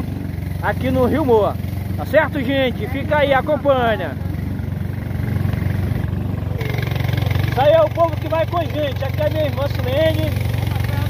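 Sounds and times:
boat motor droning: 0.0s - 11.0s.

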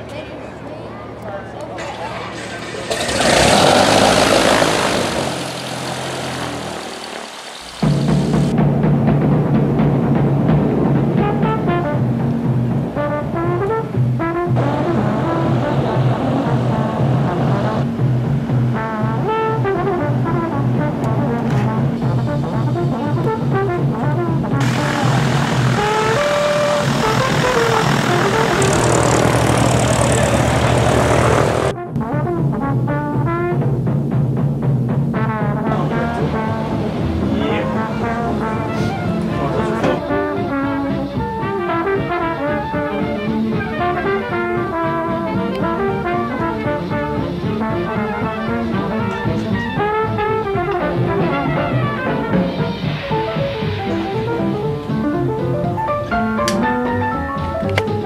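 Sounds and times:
propeller aircraft engine: 2.3s - 8.5s, 24.6s - 31.8s
orchestral music with brass: 2.9s - 58.0s
steady low drone: 24.6s - 31.8s, 35.6s - 40.5s.

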